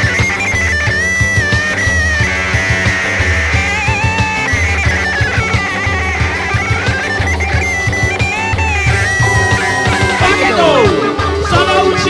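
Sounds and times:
high melodic line sliding: 0.0s - 12.0s
rock band music: 0.0s - 12.0s.

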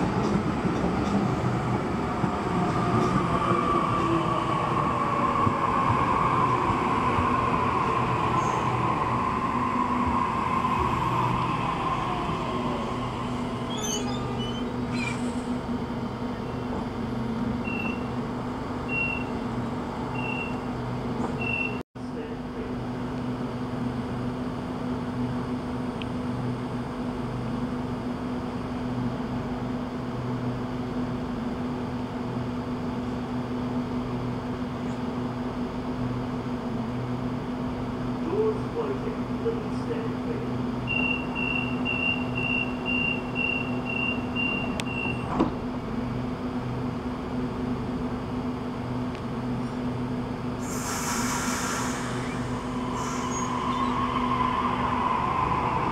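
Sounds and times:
train doors shutting: 0.0s - 16.9s, 40.8s - 45.8s, 50.6s - 55.9s
electric train humming: 0.0s - 21.3s, 29.0s - 55.9s
door-closing warning beeps: 17.6s - 18.1s, 18.9s - 19.3s, 20.2s - 20.6s, 21.4s - 21.8s, 40.9s - 45.5s.

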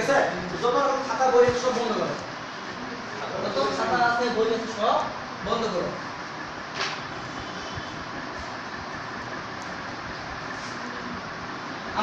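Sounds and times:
whiteboard being wiped: 10.4s - 11.0s.

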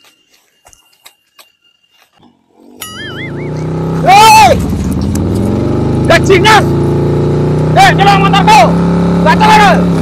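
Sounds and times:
wavering high tone: 0.0s - 4.1s
drawn-out voice call: 2.8s - 4.7s
small motorcycle engine running: 2.8s - 10.0s.

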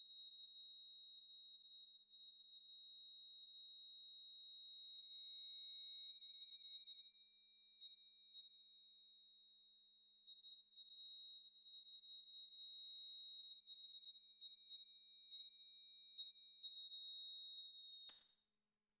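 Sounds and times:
click: 18.0s - 18.2s.

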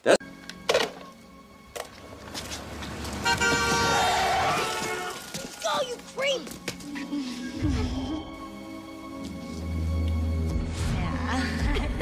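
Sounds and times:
street noise: 0.0s - 10.6s
car horn blast: 3.2s - 5.2s.

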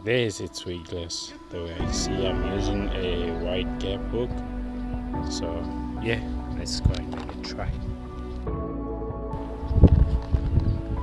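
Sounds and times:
background music with held tones: 0.0s - 11.0s
footsteps through brush: 6.8s - 8.5s.

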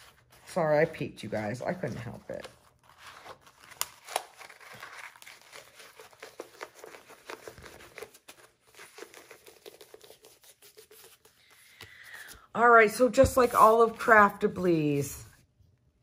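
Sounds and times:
plastic film crackling and crinkling: 0.0s - 12.4s.

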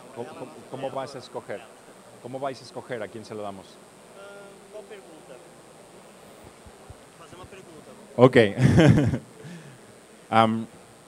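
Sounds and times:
men's quiet conversation: 0.0s - 11.0s.

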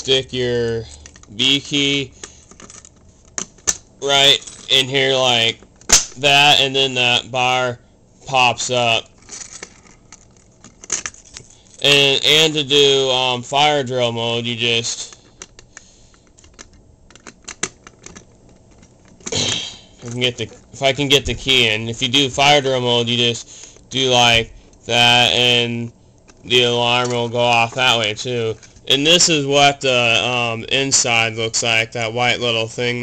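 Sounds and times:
person coughing: 19.3s - 20.0s.

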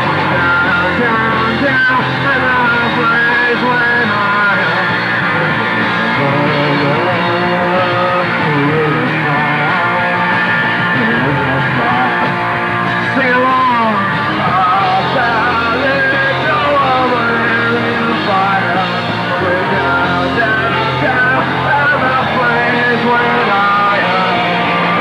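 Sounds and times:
drums: 0.0s - 25.0s
electric guitars: 0.0s - 25.0s
person singing lead vocal: 0.0s - 25.0s.

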